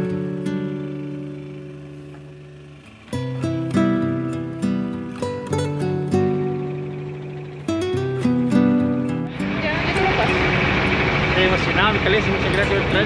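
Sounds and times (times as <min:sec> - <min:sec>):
gentle acoustic guitar music: 0:00.0 - 0:13.0
motorboat engine: 0:00.0 - 0:13.0.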